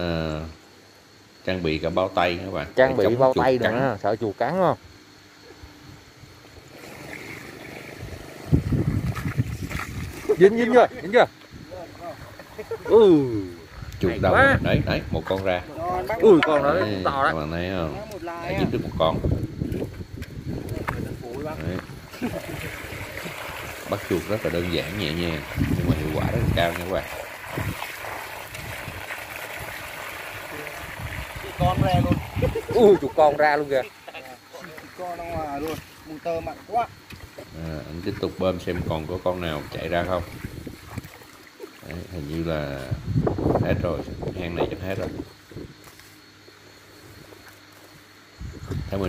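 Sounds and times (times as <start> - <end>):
high-pitched insect call: 0.0 - 49.0
water trickling from hose: 6.4 - 14.1, 18.0 - 43.6.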